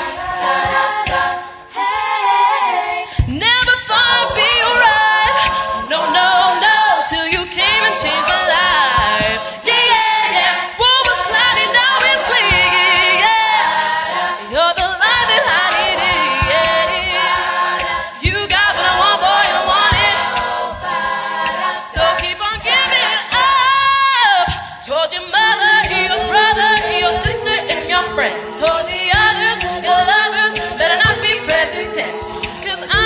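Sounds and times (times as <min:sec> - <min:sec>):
low thumping beat: 0:00.0 - 0:01.4, 0:03.2 - 0:33.0
backing voices singing: 0:00.0 - 0:33.0
solo woman singing with vibrato: 0:01.9 - 0:13.6, 0:14.4 - 0:17.2, 0:18.1 - 0:20.2, 0:21.9 - 0:33.0.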